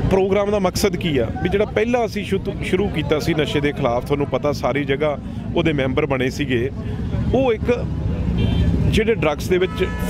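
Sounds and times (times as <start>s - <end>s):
man speaking: 0.0s - 8.0s, 8.8s - 10.0s.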